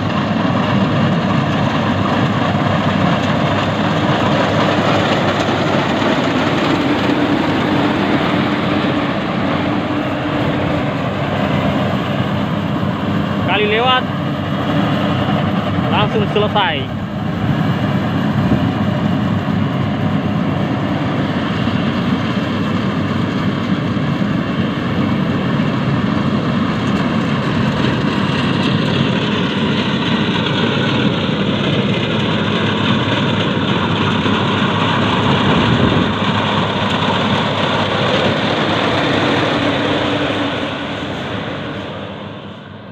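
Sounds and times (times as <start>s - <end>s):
diesel engine drone: 0.0s - 42.9s.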